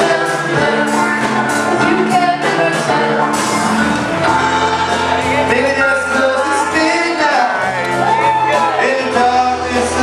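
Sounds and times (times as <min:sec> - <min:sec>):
live band playing: 0:00.0 - 0:10.0
person singing: 0:04.8 - 0:10.0.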